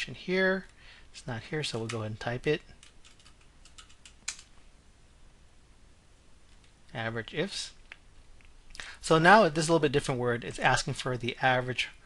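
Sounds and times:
faint keyboard keystrokes: 2.7s - 4.5s.

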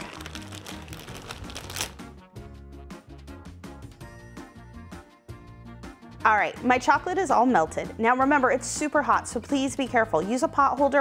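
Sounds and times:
plastic bag crinkling: 0.0s - 2.0s
background music: 0.0s - 11.0s.

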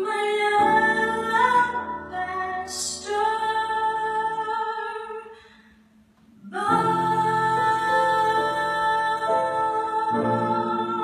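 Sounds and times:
woman singing gospel ballad: 0.0s - 5.4s, 6.4s - 11.0s
piano accompaniment: 6.3s - 11.0s.

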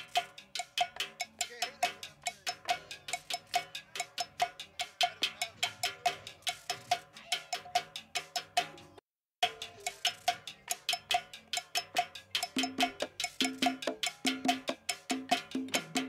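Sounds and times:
cowbell struck in fast rhythm: 0.0s - 16.0s
light percussion: 0.0s - 16.0s.

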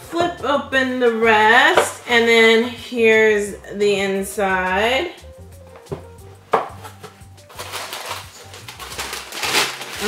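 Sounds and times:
tissue paper rustling: 6.8s - 10.0s.

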